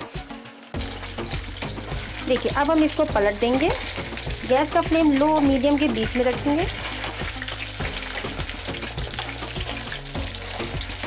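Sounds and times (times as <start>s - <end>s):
background music: 0.0s - 11.0s
food deep-frying in oil: 0.0s - 11.0s.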